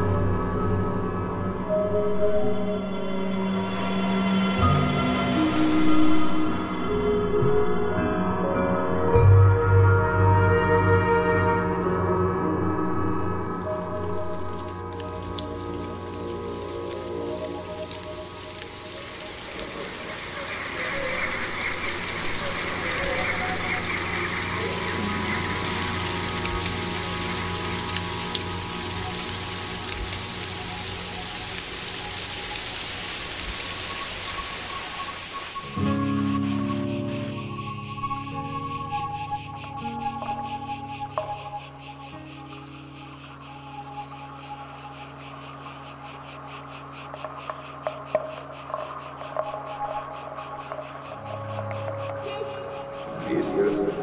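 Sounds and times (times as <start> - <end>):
cricket chirring: 12.4 - 54.0
background hiss: 13.4 - 54.0
held ambient tones: 51.3 - 54.0.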